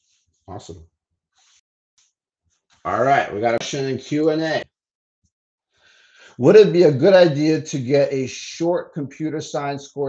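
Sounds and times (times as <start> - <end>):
man speaking: 0.5 - 0.8, 2.9 - 4.6, 6.2 - 10.0.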